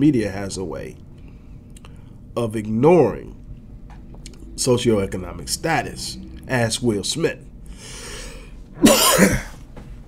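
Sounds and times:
breath in: 7.7s - 8.6s
man coughing: 8.8s - 9.6s.

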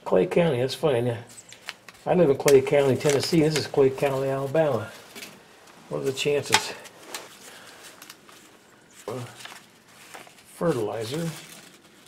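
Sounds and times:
papers rustling: 1.3s - 12.0s.

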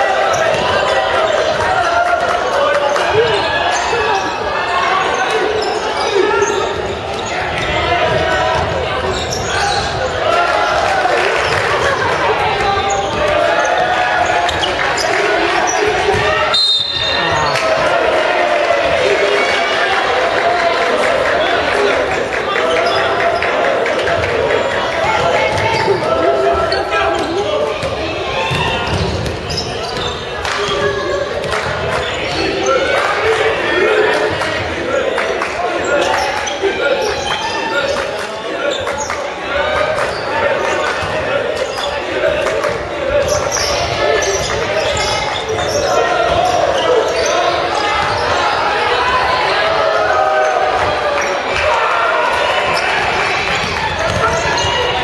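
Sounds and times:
people shouting in gymnasium: 0.0s - 55.0s
basketball bouncing on wooden court: 27.1s - 32.5s, 53.4s - 54.9s.

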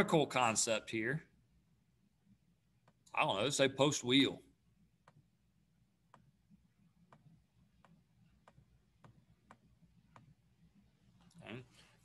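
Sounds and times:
man speaking: 0.0s - 1.3s, 3.1s - 4.5s, 11.3s - 11.8s.

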